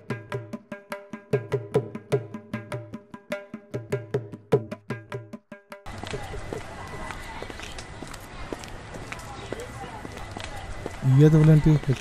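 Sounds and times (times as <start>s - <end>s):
faint indistinct voices: 5.9s - 12.0s.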